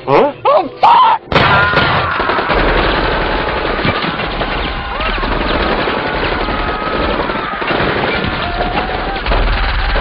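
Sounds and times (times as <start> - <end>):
rapid automatic gunfire: 2.0 - 10.0.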